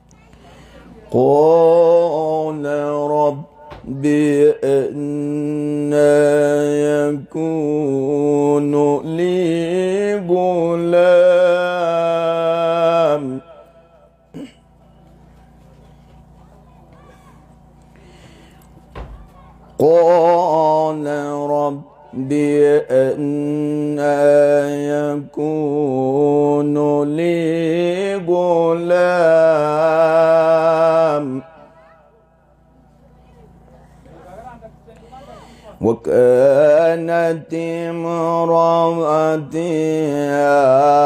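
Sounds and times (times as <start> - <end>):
man chanting melodically: 1.0 - 14.2, 19.8 - 31.9, 34.2 - 41.0.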